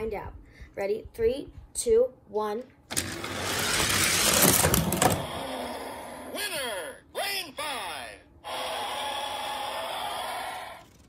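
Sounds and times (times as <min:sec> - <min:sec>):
toy speaker rushing noise: 0:02.9 - 0:06.1.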